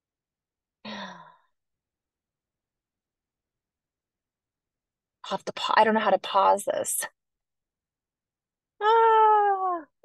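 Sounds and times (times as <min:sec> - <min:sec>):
woman sighing: 0:00.8 - 0:01.5.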